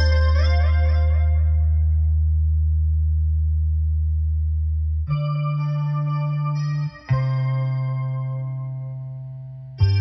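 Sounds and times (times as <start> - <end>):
deep held bass note: 0.0 - 6.2.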